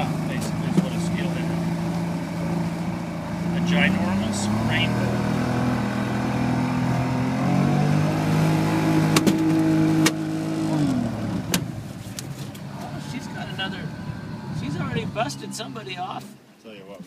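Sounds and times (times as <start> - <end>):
boat motor running: 0.0 - 16.5.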